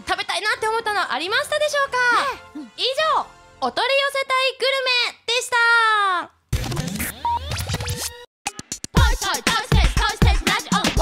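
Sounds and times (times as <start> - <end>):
dance-music beat: 8.5 - 11.0.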